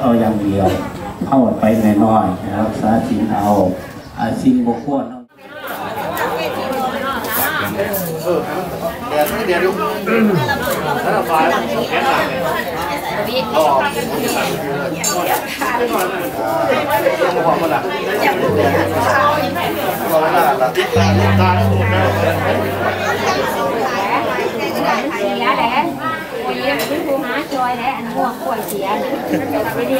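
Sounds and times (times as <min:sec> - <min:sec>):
steady low hum: 0:18.5 - 0:20.3, 0:21.0 - 0:24.1
crowd chatter: 0:18.5 - 0:24.6.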